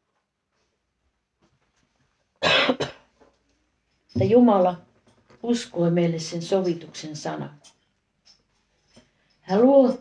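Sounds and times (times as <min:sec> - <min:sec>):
woman coughing: 0:02.4 - 0:03.1.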